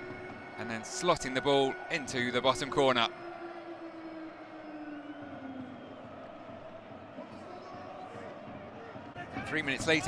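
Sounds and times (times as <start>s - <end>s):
stadium crowd noise: 0.0s - 10.0s.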